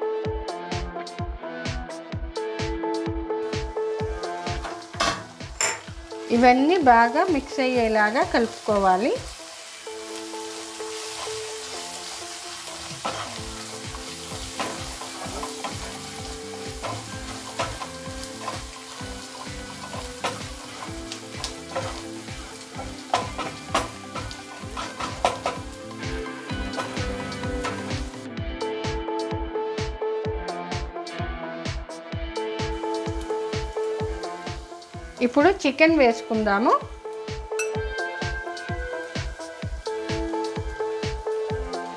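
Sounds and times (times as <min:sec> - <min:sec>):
soft background music: 0:00.0 - 0:41.9
onions sizzling in a pan: 0:03.5 - 0:28.3, 0:32.7 - 0:41.9
wooden spatula scraping: 0:10.9 - 0:25.7
spatula knocking against pan: 0:22.9 - 0:25.7.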